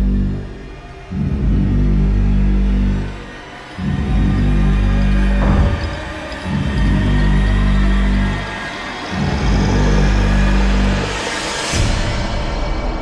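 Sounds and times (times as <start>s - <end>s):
low droning notes: 0.0s - 12.2s.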